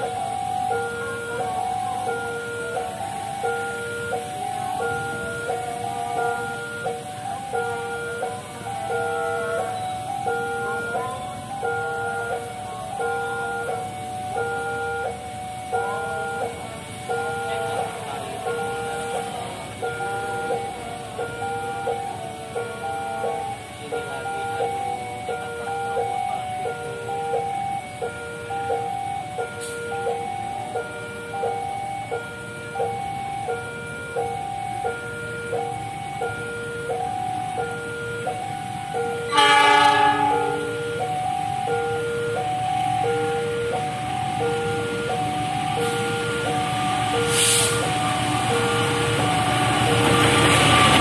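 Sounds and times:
faint road traffic: 0.0 - 51.0.

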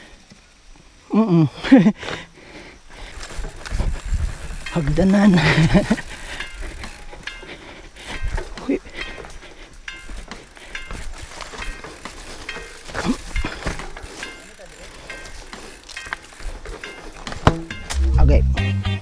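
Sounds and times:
rolling tyre and wind noise: 0.0 - 18.1
person laughing: 1.1 - 2.2, 5.2 - 6.2
bike knocks and rattles: 3.0 - 18.1.

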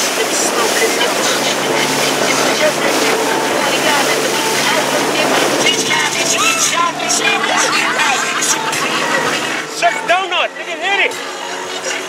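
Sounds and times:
rush of spray: 0.0 - 6.2
boat engine drone: 0.0 - 12.0
passengers shrieking and laughing: 0.0 - 12.0
people yelling: 0.0 - 12.0.

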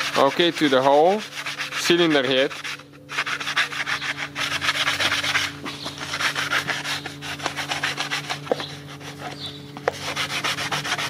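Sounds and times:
sandpaper rasping on metal: 0.0 - 11.0
steady low hum: 0.0 - 11.0.

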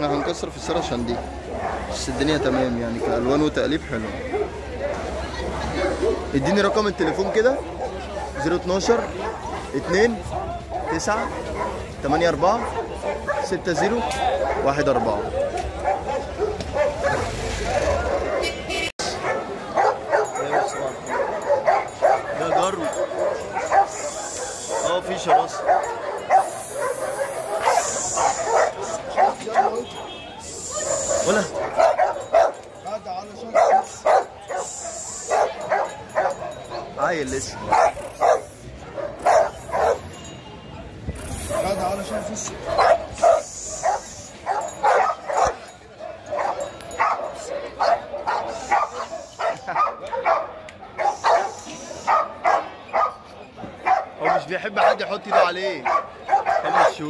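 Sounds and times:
dog barking: 0.0 - 3.4, 4.2 - 5.0, 5.8 - 32.7, 33.4 - 40.3, 41.4 - 57.0.

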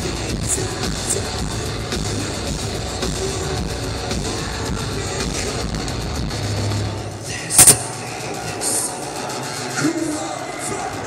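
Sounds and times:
live metal concert: 0.0 - 11.0
sharp loud bang: 7.5 - 8.1.

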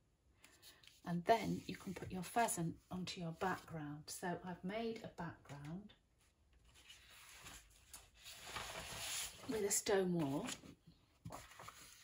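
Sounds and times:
paper rustling on a tabletop: 6.5 - 12.0.

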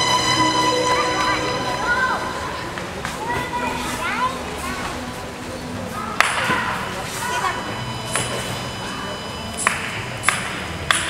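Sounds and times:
large hall background noise: 0.0 - 11.0.

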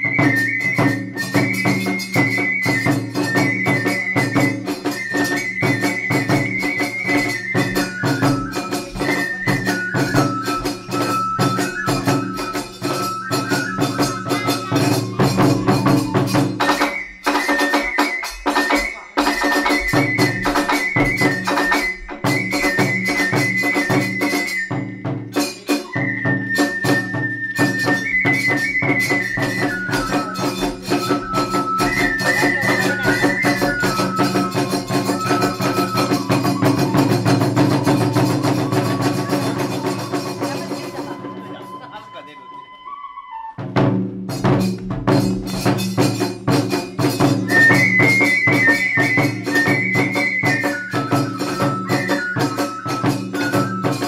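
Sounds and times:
hand cymbals clashing: 0.0 - 26.0, 26.6 - 41.8, 44.2 - 54.0
bamboo flute melody: 0.0 - 54.0
drums: 0.0 - 54.0.

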